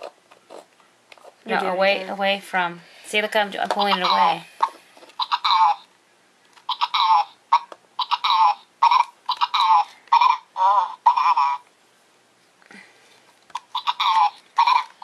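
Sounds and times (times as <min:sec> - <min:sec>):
toy babbling high-pitched gibberish: 0:05.2 - 0:05.9, 0:06.7 - 0:11.7, 0:13.6 - 0:15.0.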